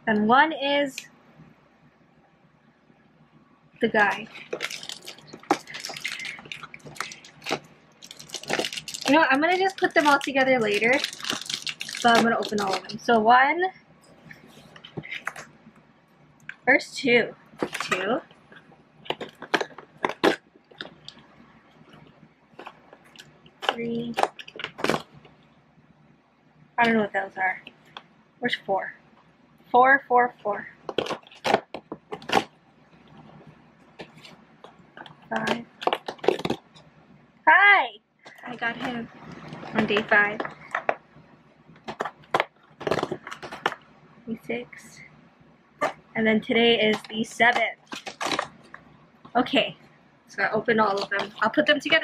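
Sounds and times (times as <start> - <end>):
cardboard clicks and crackles: 4.0 - 13.0, 17.6 - 21.2, 30.8 - 32.5, 35.0 - 36.8, 41.8 - 43.9, 46.8 - 48.8.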